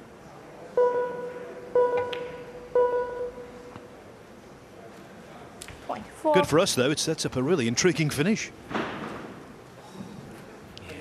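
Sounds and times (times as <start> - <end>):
electronic warning beeps: 0.8 - 3.8.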